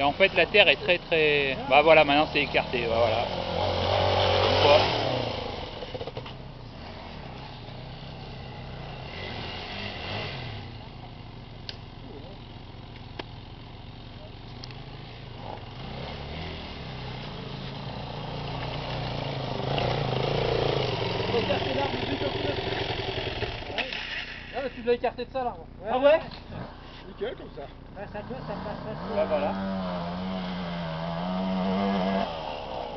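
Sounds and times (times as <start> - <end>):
dirt bike engines: 0.0 - 32.9.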